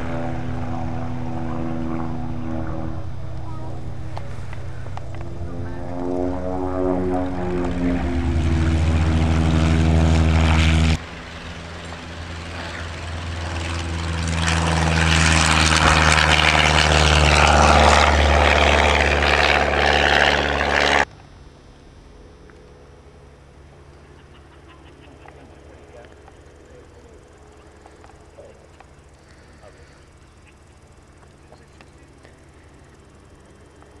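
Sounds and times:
distant aircraft engine drone: 0.0 - 34.0
light aircraft engine at full power: 0.0 - 34.0
propeller aircraft passing: 0.0 - 34.0.

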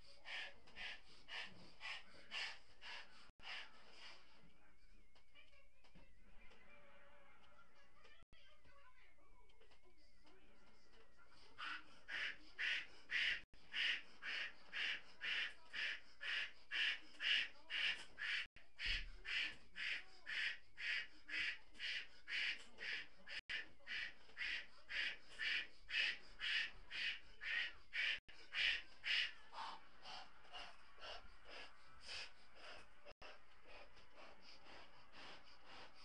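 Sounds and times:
rasping puffs into balloon: 0.0 - 4.3, 11.6 - 36.0.

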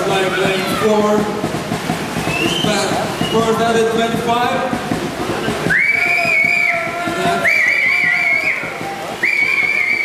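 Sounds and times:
long high whistles: 2.2 - 3.6, 5.7 - 10.0.

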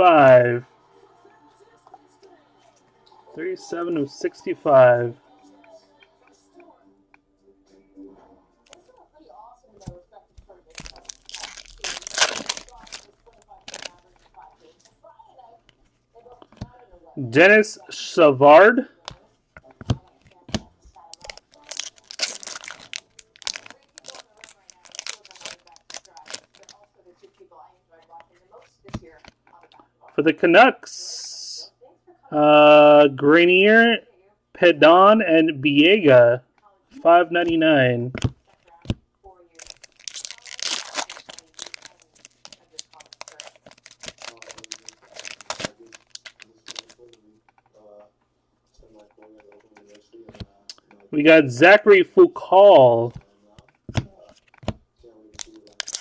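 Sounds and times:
cards being handled: 9.8 - 14.8, 19.0 - 27.4, 28.0 - 29.7, 37.4 - 39.0, 39.6 - 47.8, 48.7 - 51.1, 52.8 - 56.0
plastic wrapper tearing and crinkling: 10.7 - 14.4, 20.5 - 26.8, 39.5 - 47.2, 54.0 - 56.0.

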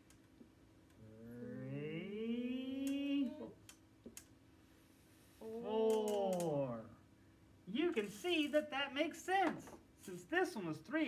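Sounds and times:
person humming long tones: 1.0 - 3.6.

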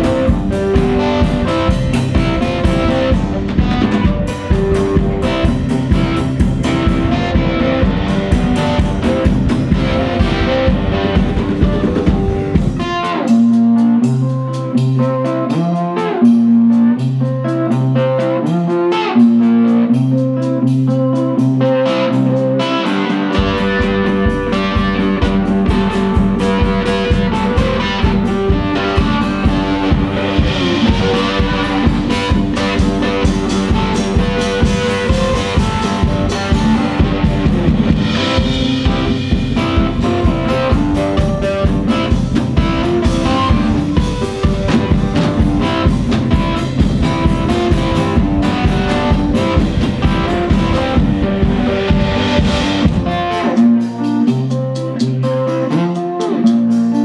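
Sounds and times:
drum kit beat with cymbals: 0.0 - 57.0
electric slide guitar blues: 0.0 - 57.0.

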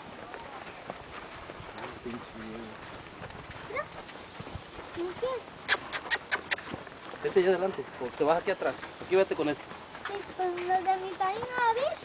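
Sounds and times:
sharp high clicks: 5.7 - 6.7.

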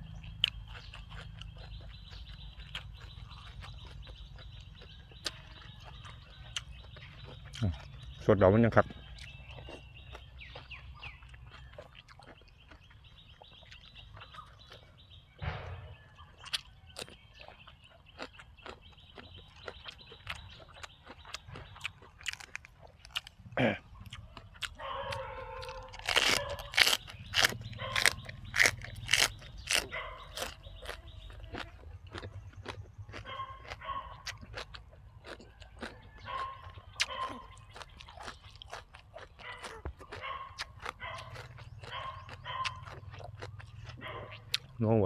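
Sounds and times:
crunching raw vegetables: 0.0 - 45.0.

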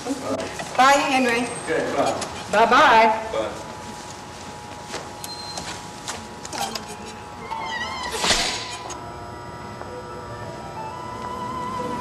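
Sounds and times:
door hinge squealing: 7.4 - 9.0.

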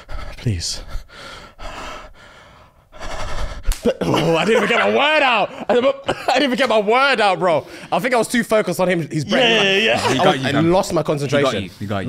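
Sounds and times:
man laughing: 3.8 - 6.8, 9.3 - 10.9.

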